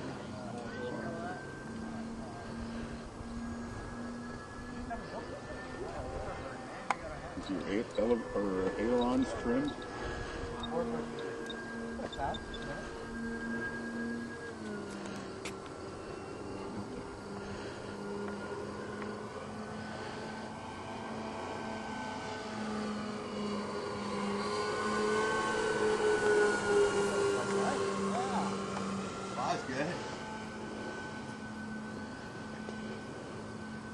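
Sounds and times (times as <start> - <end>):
model plane motors whining: 0.0 - 33.9.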